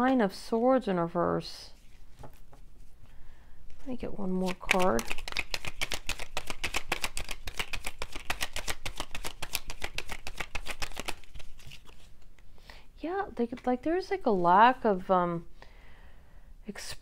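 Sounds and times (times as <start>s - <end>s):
cards being shuffled: 1.8s - 2.6s, 4.3s - 12.5s.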